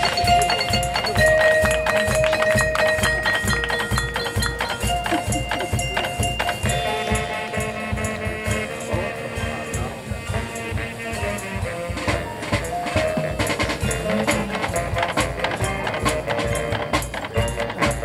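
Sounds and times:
marching band playing: 0:00.0 - 0:18.0
steady drum beat: 0:00.0 - 0:18.0.

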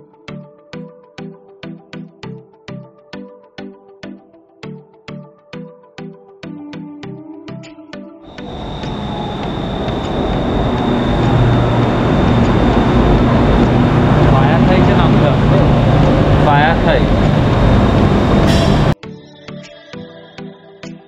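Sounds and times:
thin high whine: 0:08.3 - 0:19.0
train rumbling into station: 0:08.3 - 0:19.0
wavering squeals: 0:08.3 - 0:19.0.

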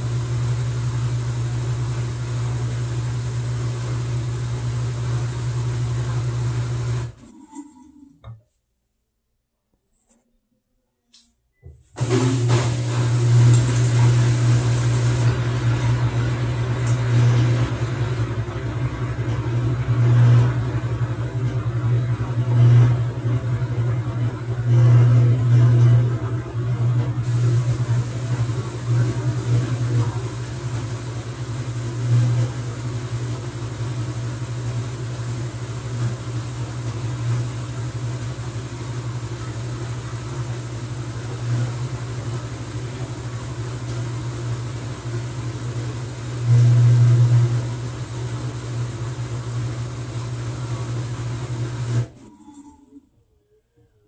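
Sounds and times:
washing machine humming: 0:00.0 - 0:08.4, 0:11.6 - 0:53.0.

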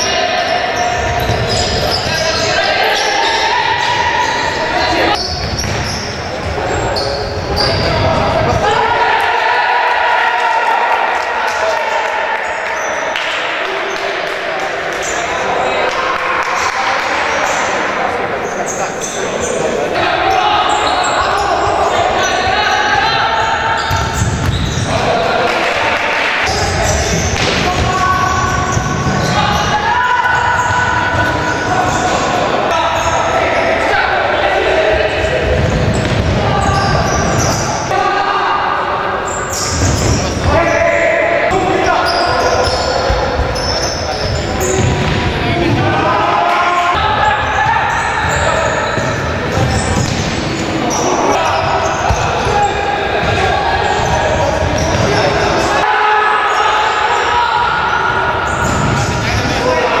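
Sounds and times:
players shouting: 0:00.0 - 1:00.0.

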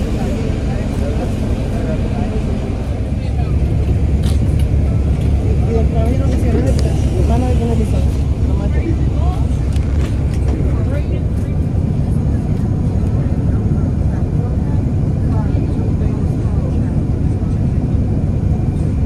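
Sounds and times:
bus engine and road rumble: 0:00.0 - 0:19.0
faint passenger voices: 0:00.0 - 0:19.0.

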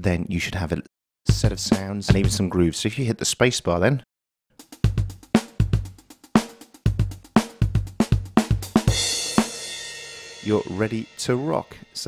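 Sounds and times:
drum kit beat: 0:01.3 - 0:02.6, 0:04.6 - 0:12.0.

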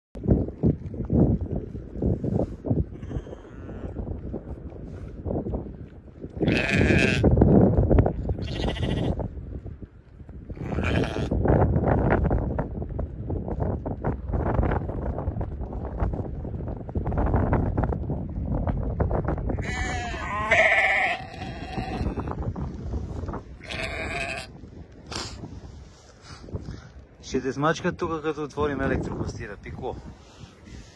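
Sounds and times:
sheep bleating: 0:06.4 - 0:07.3, 0:08.4 - 0:09.2, 0:10.6 - 0:11.3, 0:19.6 - 0:22.3, 0:23.6 - 0:24.6
sheep rustling and shuffling: 0:22.2 - 0:27.4.

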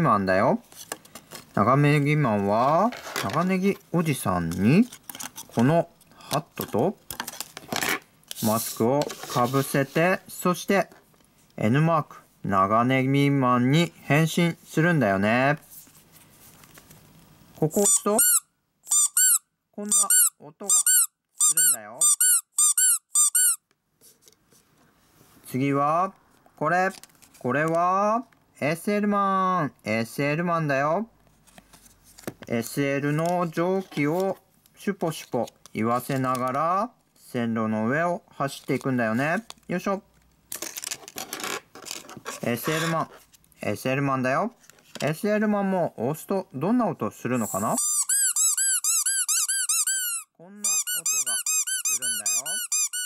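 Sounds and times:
squeaker toy squeaks: 0:17.7 - 0:23.6, 0:47.4 - 0:53.0.

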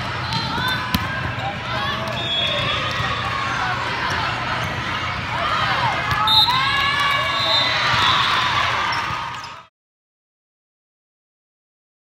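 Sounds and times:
sneakers squeaking on court: 0:08.9 - 0:09.5.

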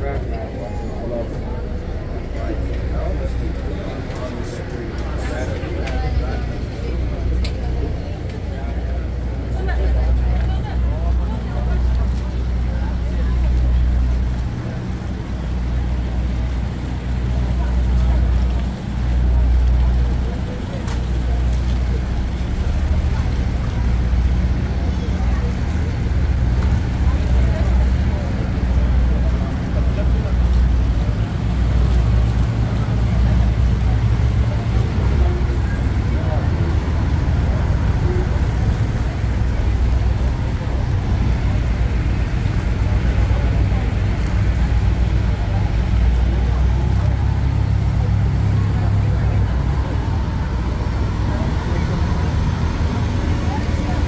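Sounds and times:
ferry diesel engines rumbling: 0:00.0 - 0:54.0
murmur of voices: 0:00.0 - 0:54.0.

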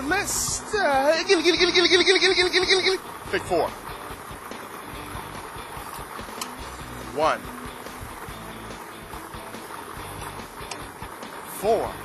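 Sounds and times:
faint background music: 0:00.0 - 0:12.0
lottery machine air rush: 0:00.0 - 0:12.0
balls clicking together: 0:01.4 - 0:12.0.

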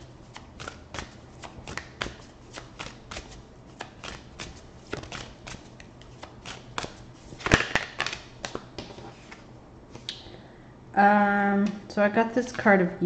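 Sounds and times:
cards being shuffled by hand: 0:00.2 - 0:10.1.

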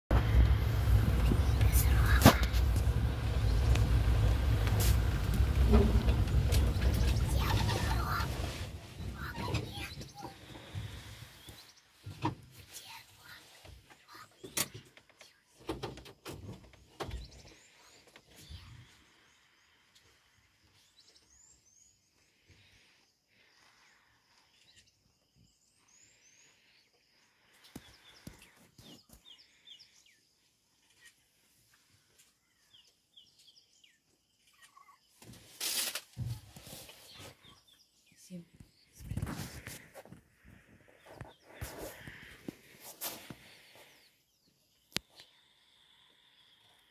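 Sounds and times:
bird chirps: 0:32.4 - 0:35.2.

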